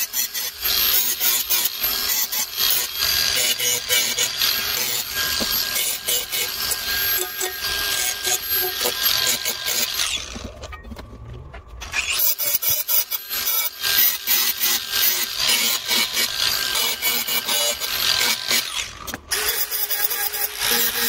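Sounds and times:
angle grinder cutting steel: 0.0s - 10.6s, 11.8s - 21.0s.

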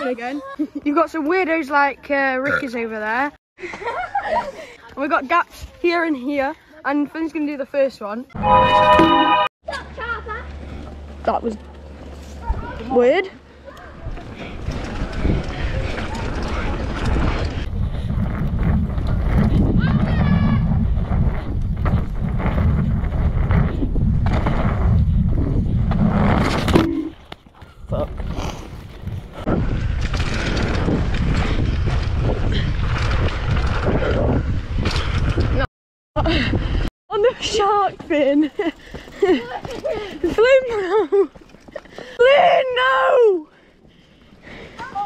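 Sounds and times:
tyres rolling on dirt trail: 9.3s - 35.7s, 36.4s - 45.0s
wind rushing over camera: 14.0s - 27.1s, 27.8s - 35.7s.

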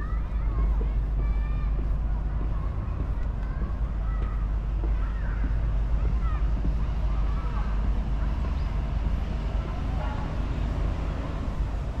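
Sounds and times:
distant traffic rumble: 0.0s - 12.0s
faint distant voices: 0.0s - 12.0s.

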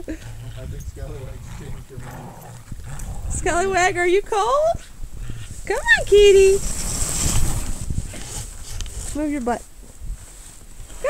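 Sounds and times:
low rumbling bumps: 0.0s - 10.2s.

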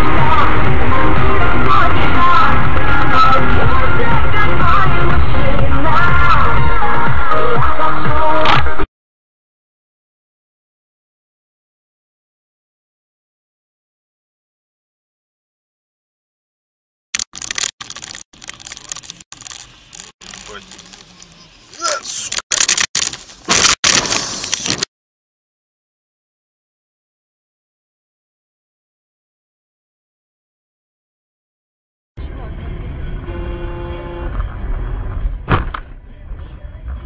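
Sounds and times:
road and engine rumble: 0.0s - 8.9s, 17.2s - 24.9s, 32.2s - 37.0s
crackly clattering noise: 17.2s - 24.9s
person speaking: 17.4s - 22.8s
car horn: 33.0s - 34.6s.

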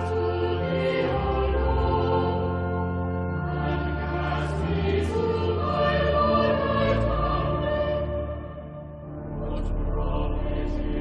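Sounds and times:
choir singing sacred music: 0.0s - 11.0s.

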